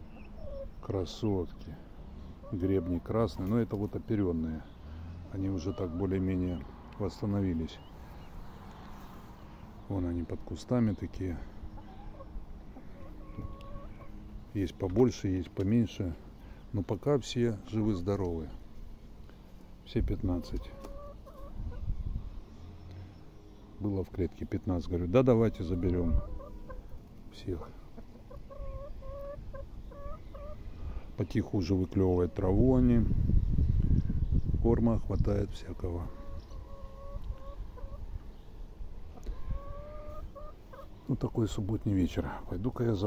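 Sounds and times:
hens clucking: 0.0s - 21.9s, 24.0s - 32.9s, 35.6s - 38.4s, 39.0s - 43.0s
hens calling: 0.0s - 33.0s, 35.6s - 43.0s
hen long drawn-out calls: 11.6s - 14.3s, 20.4s - 21.9s, 25.4s - 27.0s, 27.6s - 31.0s, 36.0s - 38.2s, 39.2s - 41.0s.

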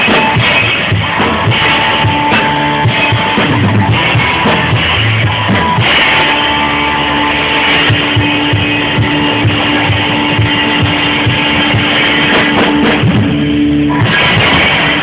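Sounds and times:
live band through speakers: 0.0s - 15.0s
steady drum beat: 0.0s - 15.0s.

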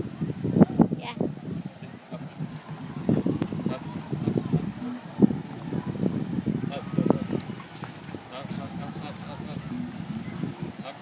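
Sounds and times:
footsteps of person and dog: 2.3s - 6.4s, 7.0s - 11.0s
metal chain leash clinking: 2.3s - 11.0s.

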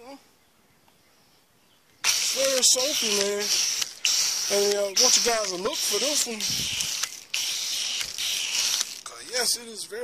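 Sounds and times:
foam gun spraying: 2.0s - 9.1s.

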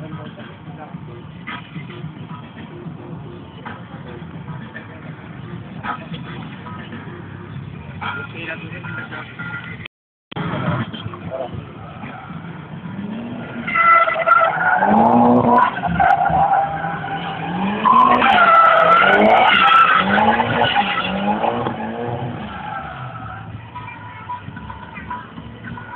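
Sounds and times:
car engine revving: 10.5s - 25.9s
tyres squealing: 13.3s - 24.2s.

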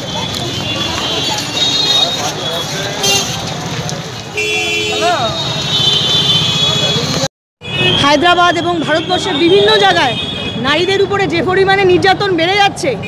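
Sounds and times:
street traffic: 0.0s - 13.0s
voices chattering: 0.0s - 13.0s
car horn tooting: 0.5s - 3.5s, 4.3s - 10.9s.

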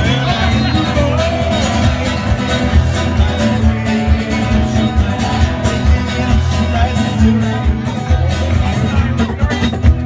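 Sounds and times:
acoustic guitar strummed: 0.0s - 10.0s.

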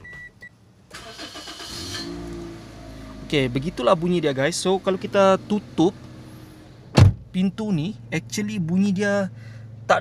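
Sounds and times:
car engine cranking and idling: 0.0s - 10.0s.

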